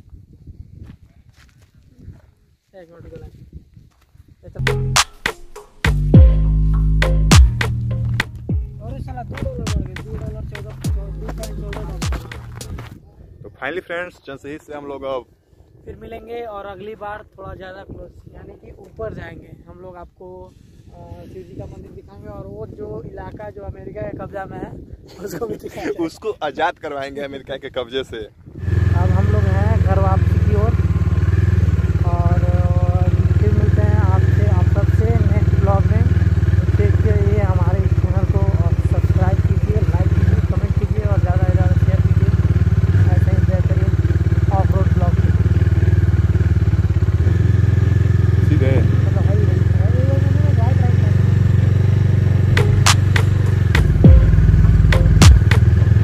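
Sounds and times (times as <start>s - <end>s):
person talking: 4.5s - 5.0s, 8.7s - 12.8s
motorcycle engine running: 7.3s - 12.9s, 28.6s - 56.0s.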